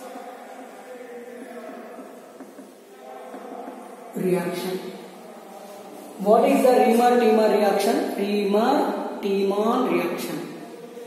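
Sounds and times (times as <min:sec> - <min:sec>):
faint chanting voice: 0:00.0 - 0:09.3, 0:10.2 - 0:11.0.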